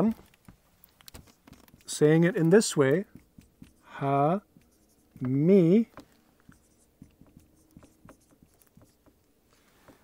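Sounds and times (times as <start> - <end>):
marker writing on a whiteboard: 0.0 - 10.0.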